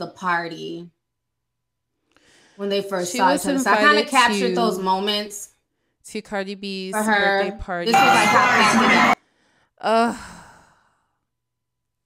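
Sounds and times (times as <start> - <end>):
woman sighing: 9.8 - 10.8.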